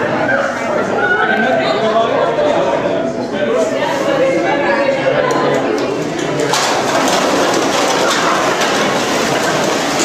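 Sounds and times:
containers clicking and knocking: 0:05.6 - 0:10.0.

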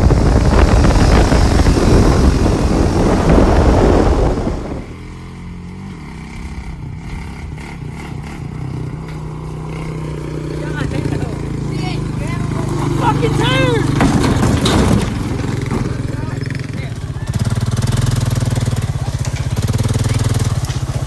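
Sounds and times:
wind rumble on microphone: 0:00.0 - 0:05.2
atv engine running: 0:00.0 - 0:21.0.

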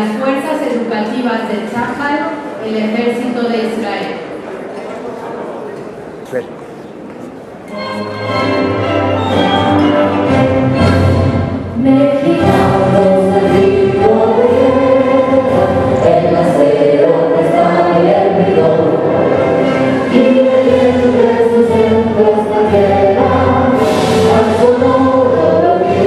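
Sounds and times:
mixed choir singing anthem: 0:11.0 - 0:26.0.

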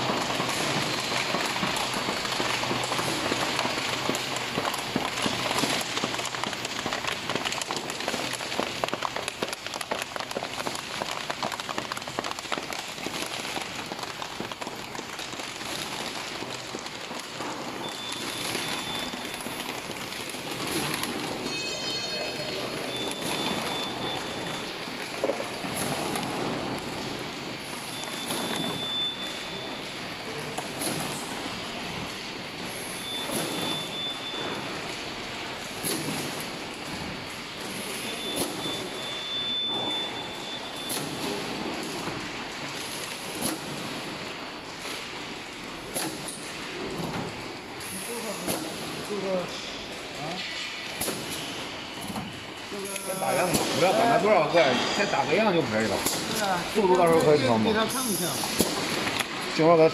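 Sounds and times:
short high beeps: 0:17.8 - 0:19.4, 0:21.4 - 0:24.6.

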